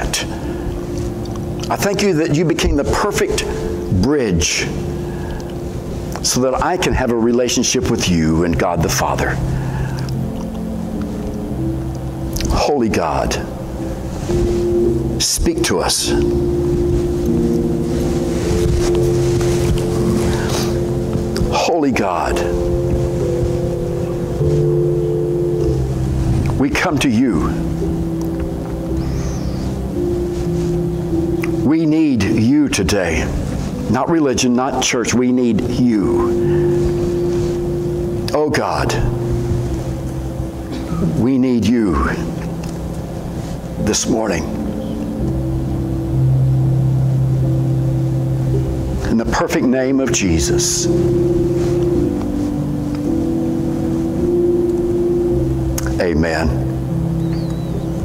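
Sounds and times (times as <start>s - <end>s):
soft keyboard chords: 0.0s - 58.0s.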